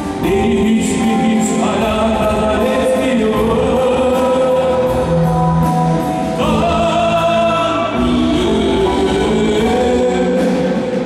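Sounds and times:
live rock band playing: 0.0s - 11.0s.

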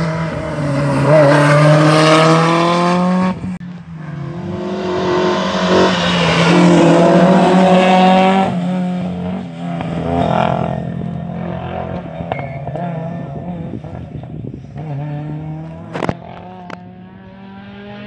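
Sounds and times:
rally car engines accelerating: 0.0s - 18.0s.

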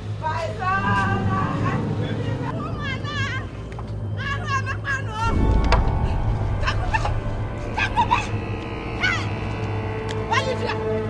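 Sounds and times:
low steady hum: 0.0s - 10.6s.

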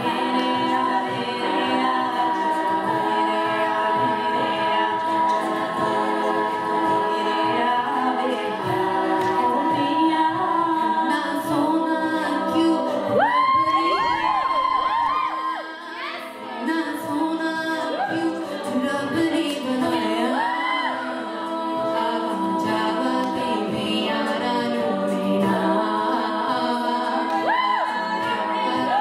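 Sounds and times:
female a cappella group singing: 0.0s - 29.0s.

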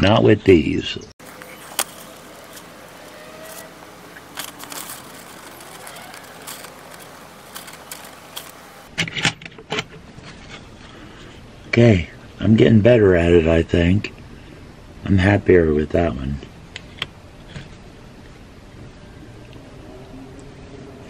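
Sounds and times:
steady hiss: 1.2s - 8.9s.

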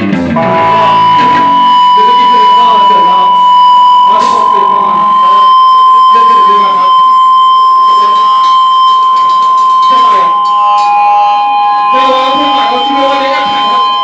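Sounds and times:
electric guitar feedback whine: 0.1s - 14.0s.

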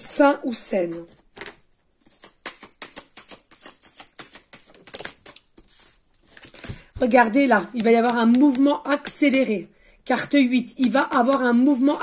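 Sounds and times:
cards being shuffled: 0.8s - 9.5s.

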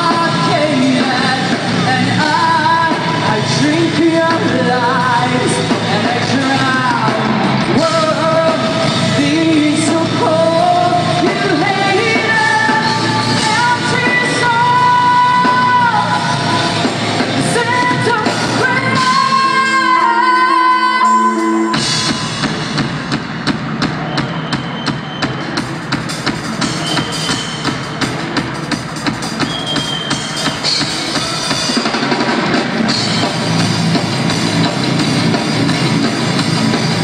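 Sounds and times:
woman singing: 0.0s - 16.8s, 17.4s - 21.8s
drums keeping steady beat: 0.0s - 37.0s
rock band playing: 0.0s - 37.0s.

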